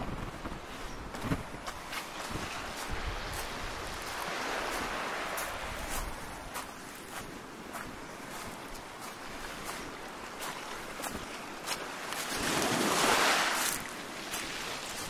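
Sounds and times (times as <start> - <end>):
footsteps on pebbles: 1.1 - 12.9.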